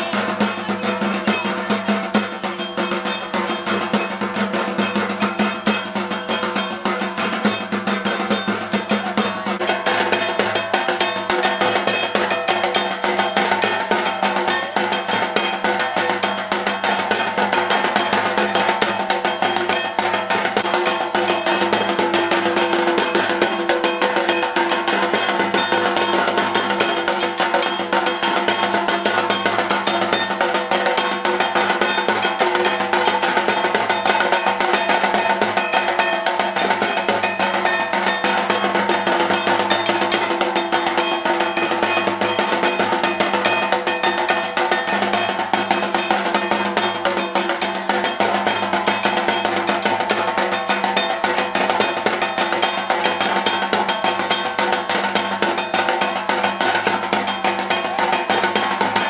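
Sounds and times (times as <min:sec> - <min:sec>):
fast dense drumming: 0:00.0 - 0:59.0.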